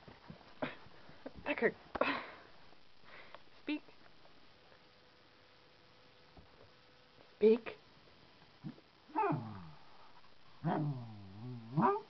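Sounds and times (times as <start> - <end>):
dog whining: 9.1 - 9.7, 10.6 - 12.0.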